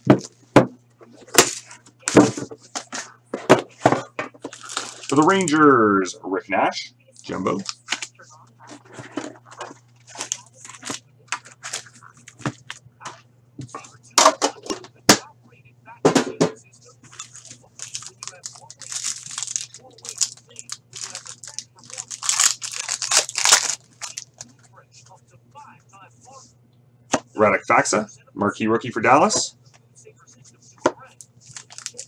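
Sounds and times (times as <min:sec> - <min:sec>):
steady low hum: 0:00.0 - 0:32.0
card wrappers tearing and crinkling: 0:04.5 - 0:05.6, 0:09.6 - 0:12.7, 0:17.1 - 0:24.5, 0:31.4 - 0:32.0.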